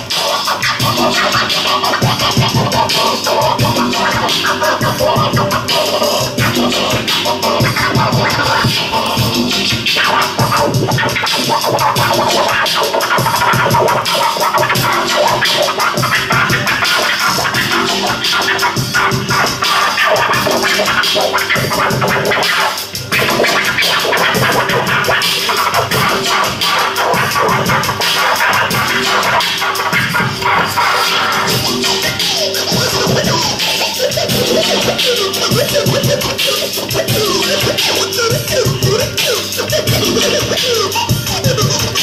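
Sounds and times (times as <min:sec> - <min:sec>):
electronic hip hop beat: 0:00.0 - 0:42.0
vinyl record scratching: 0:00.0 - 0:42.0.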